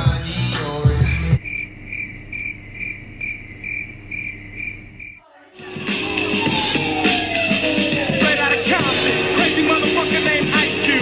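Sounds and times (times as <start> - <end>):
crickets chirping: 1.4 - 5.2
background music: 5.5 - 11.0.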